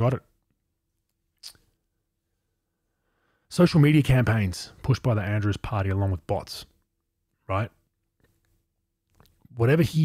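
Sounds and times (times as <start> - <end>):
faint mouth noise: 1.4 - 1.8.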